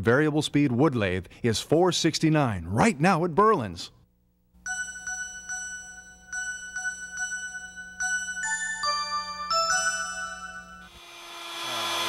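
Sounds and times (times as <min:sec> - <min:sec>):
bell-like chime: 0:04.7 - 0:11.0.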